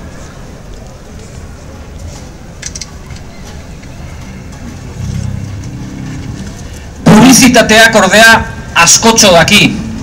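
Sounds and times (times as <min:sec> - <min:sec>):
low engine-like hum: 0:03.0 - 0:07.1.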